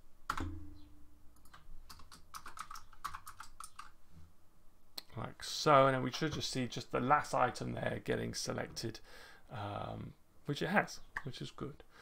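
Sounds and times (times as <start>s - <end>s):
computer keyboard typing: 1.4s - 4.0s.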